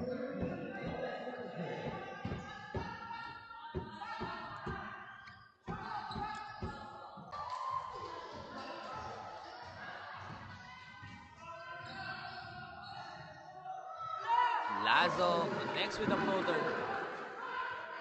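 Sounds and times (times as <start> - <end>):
voices echoing in large hall: 0.0 - 18.0.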